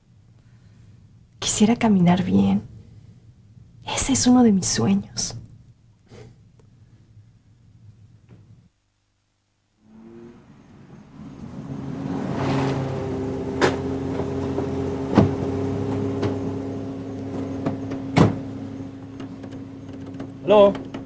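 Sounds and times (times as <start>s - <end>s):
car engine running: 9.8s - 21.0s
car door opening and shutting: 10.4s - 21.0s.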